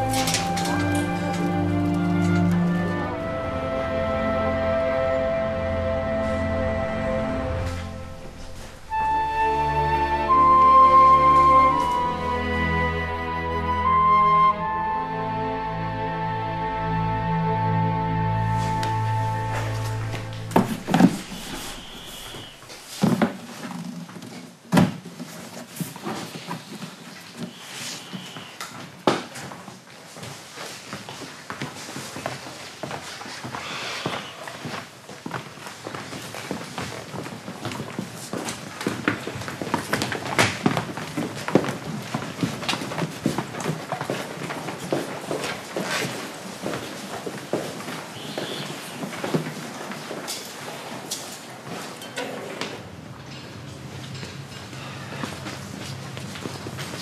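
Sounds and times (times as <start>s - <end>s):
footsteps: 0.0s - 12.9s, 18.2s - 57.0s
boxes knocking: 20.0s - 24.1s.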